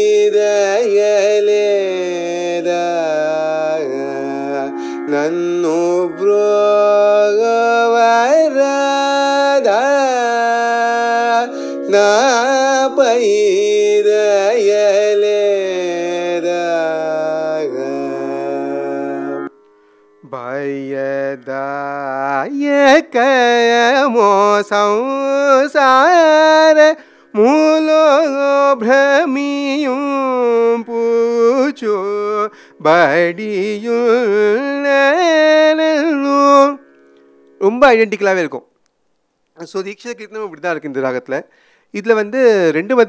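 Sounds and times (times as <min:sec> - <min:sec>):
man singing ornamented melody: 0:00.0 - 0:19.6, 0:20.2 - 0:38.0, 0:42.0 - 0:43.0.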